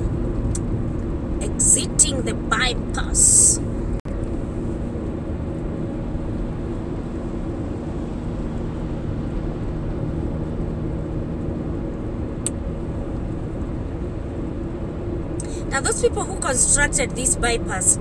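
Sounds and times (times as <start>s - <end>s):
car engine and road noise: 0.0s - 18.0s.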